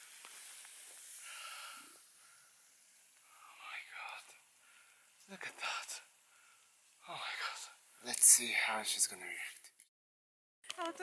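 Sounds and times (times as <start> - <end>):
person whispering: 3.2 - 4.4, 5.2 - 6.1, 7.0 - 9.7.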